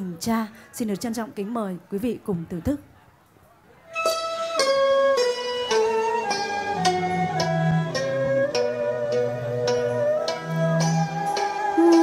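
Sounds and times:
plucked string melody: 3.9s - 12.0s.

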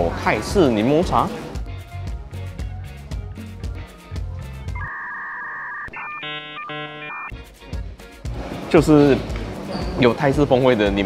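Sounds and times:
electronic chord pulses: 4.7s - 7.3s
two-tone electronic beep: 4.7s - 7.3s.

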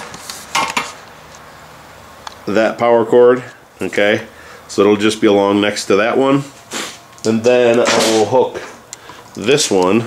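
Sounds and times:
low background noise: 0.0s - 10.0s.

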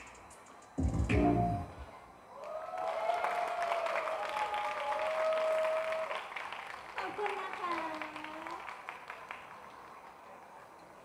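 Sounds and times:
audience clapping: 2.4s - 10.8s.

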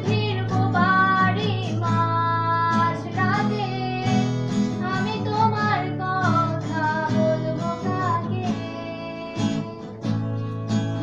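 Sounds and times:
woman singing: 0.0s - 10.0s
acoustic guitar strumming: 0.0s - 11.0s.

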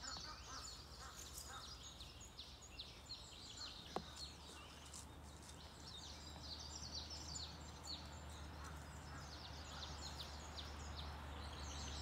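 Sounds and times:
songbirds chirping and singing: 0.0s - 12.0s.

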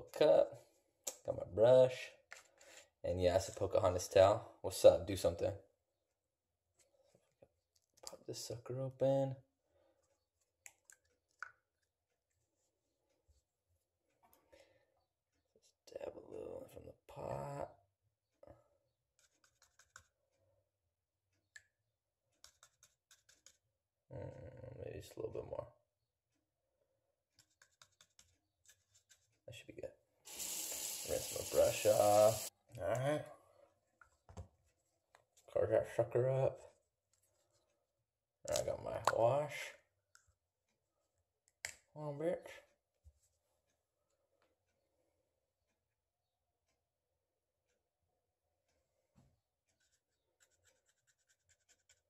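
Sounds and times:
paintbrush stirring paint in cup: 19.2s - 20.2s, 22.4s - 23.7s, 27.4s - 29.4s, 49.7s - 52.0s.

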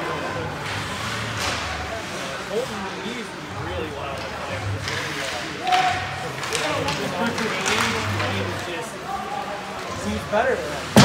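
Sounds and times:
voices: 0.0s - 11.0s
puck and sticks knocking boards: 4.1s - 8.7s.

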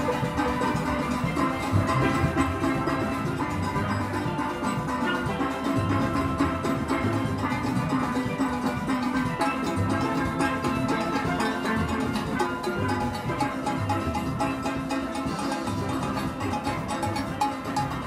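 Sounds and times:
steelband playing: 0.0s - 18.0s.

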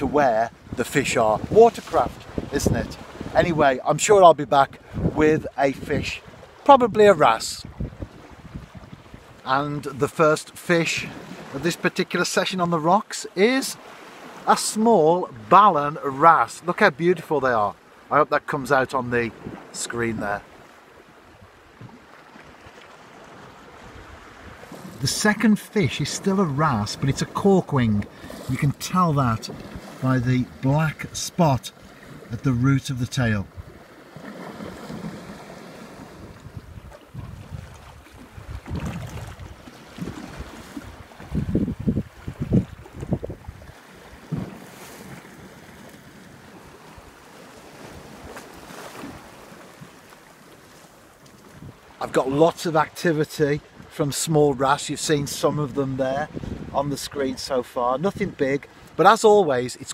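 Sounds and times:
wind on microphone: 0.0s - 3.6s, 4.7s - 6.1s, 7.6s - 9.4s, 35.9s - 44.6s, 51.5s - 51.8s, 56.2s - 56.8s
surf on rocky shore: 0.0s - 59.9s.

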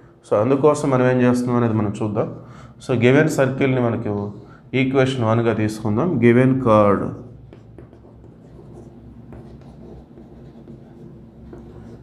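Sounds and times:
chalk scratching on chalkboard: 7.2s - 12.0s.

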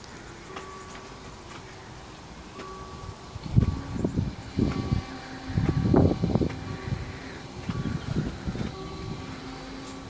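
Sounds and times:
faint train hum: 0.0s - 10.0s
wind buffeting microphone: 2.6s - 10.0s.

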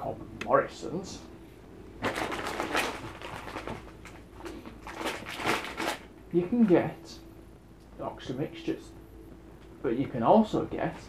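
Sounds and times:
plastic packet crinkling: 2.0s - 6.1s.

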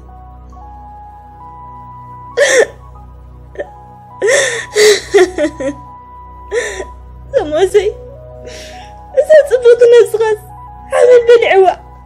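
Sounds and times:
background music: 0.0s - 12.0s
woman sobbing: 2.3s - 7.5s, 10.9s - 11.6s.

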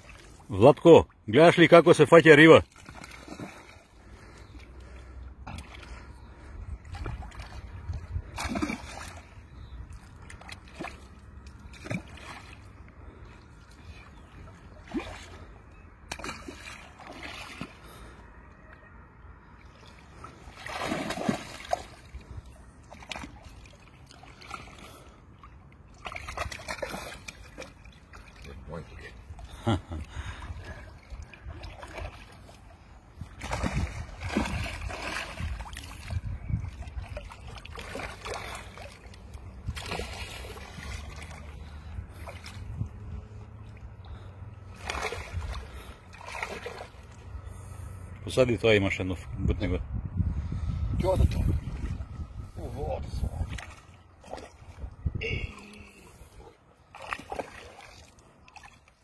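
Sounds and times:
shallow water splashing: 0.0s - 48.1s, 51.0s - 59.0s.

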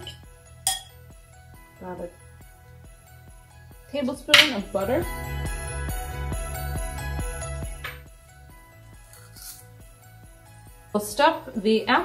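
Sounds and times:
soft christmas music: 0.0s - 12.0s.

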